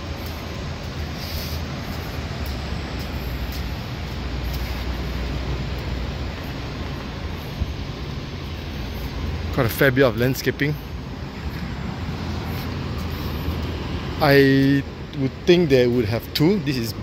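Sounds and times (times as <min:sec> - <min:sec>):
distant city traffic rumble: 0:00.0 - 0:17.0.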